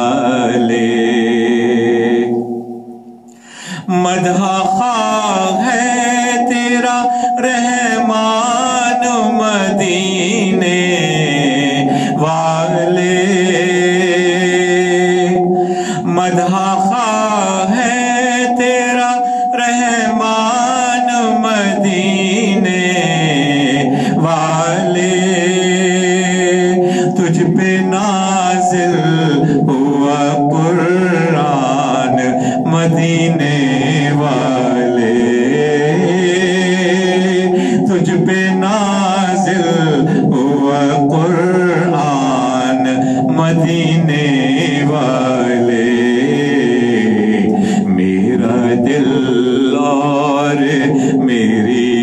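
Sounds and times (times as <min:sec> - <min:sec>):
man singing devotional song: 0:00.0 - 0:52.0.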